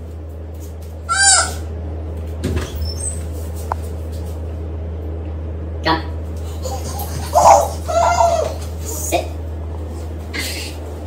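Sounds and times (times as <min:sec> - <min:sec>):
steady low hum: 0:00.0 - 0:11.0
baby squealing: 0:01.1 - 0:01.6, 0:06.6 - 0:08.6.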